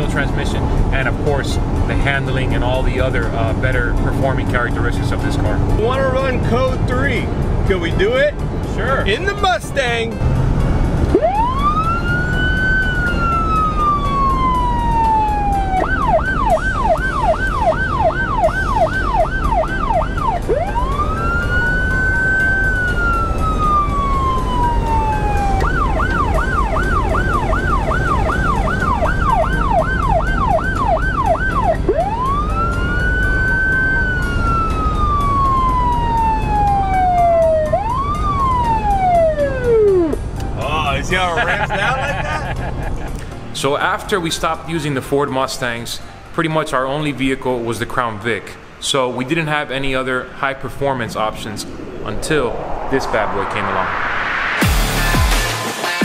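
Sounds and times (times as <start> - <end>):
car engine and road noise: 0.0 - 56.0
police siren wail and yelp: 11.1 - 40.2.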